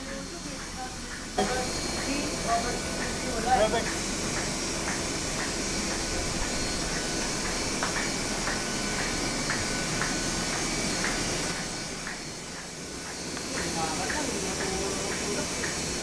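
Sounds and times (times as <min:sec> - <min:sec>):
printing press rumbling: 0:00.0 - 0:16.0.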